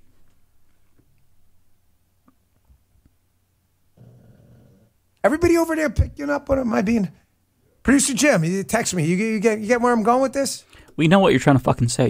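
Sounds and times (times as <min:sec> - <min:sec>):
dog grunting: 0:04.0 - 0:05.0.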